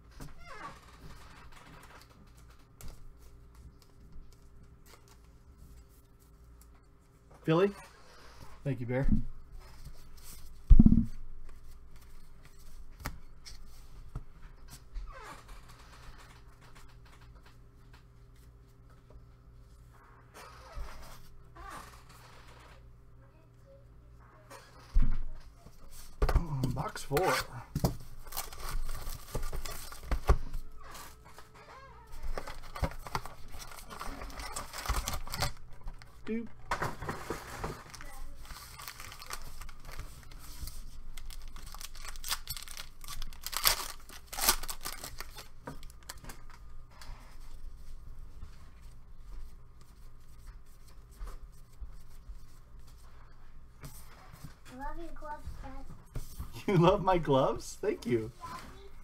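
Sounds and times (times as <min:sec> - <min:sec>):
cardboard and cards rustling: 0:25.8 - 0:53.2
foil packs tearing and crinkling: 0:28.2 - 0:30.2, 0:32.3 - 0:35.7, 0:36.9 - 0:46.3.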